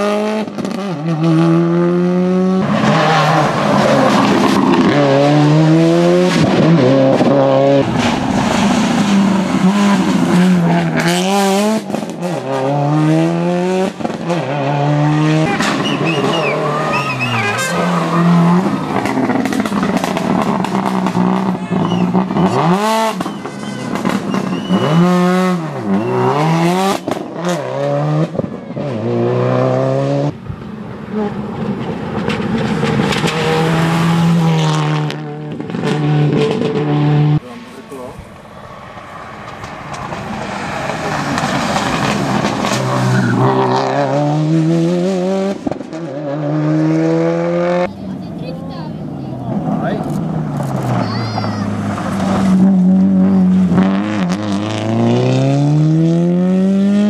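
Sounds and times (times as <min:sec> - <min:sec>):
rally car engine accelerating: 0:00.0 - 0:38.1, 0:38.7 - 0:48.4, 0:49.0 - 0:57.0
tyres squealing: 0:15.4 - 0:18.8, 0:21.6 - 0:26.5.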